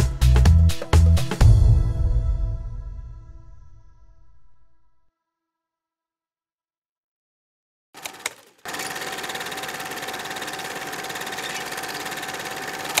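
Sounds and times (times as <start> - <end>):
small machine rattling: 8.0 - 13.0.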